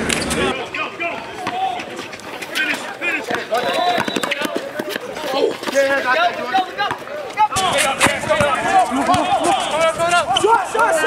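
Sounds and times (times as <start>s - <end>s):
voices shouting over one another: 5.3s - 11.0s.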